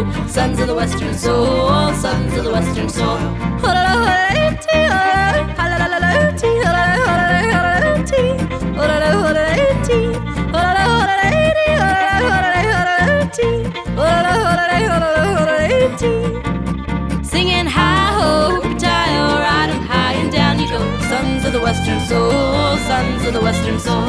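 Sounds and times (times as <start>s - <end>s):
country band playing: 0.0s - 24.0s
woman yodeling: 0.4s - 16.3s, 17.4s - 24.0s.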